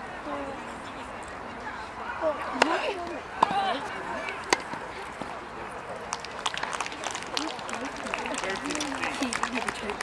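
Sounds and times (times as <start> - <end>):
people talking: 6.7 - 10.0.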